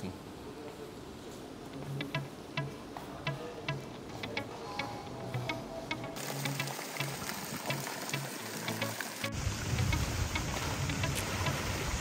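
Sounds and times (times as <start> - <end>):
background music with low beat: 1.8 - 6.2
water rushing into a pool: 6.2 - 12.0.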